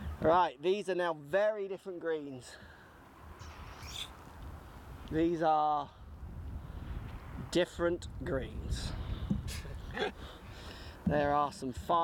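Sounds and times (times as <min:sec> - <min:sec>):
wind rumble on microphone: 0:03.2 - 0:12.0.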